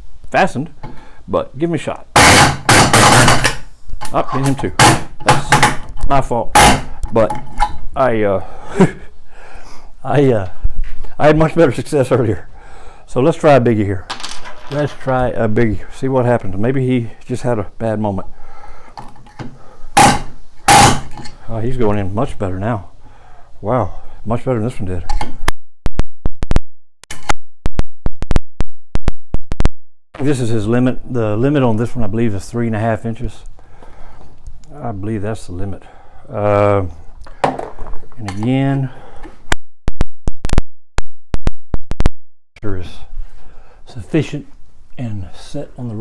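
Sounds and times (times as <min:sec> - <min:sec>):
palm nailer driving nail: 0:02.2 - 0:03.6, 0:06.6 - 0:06.9, 0:20.0 - 0:21.2.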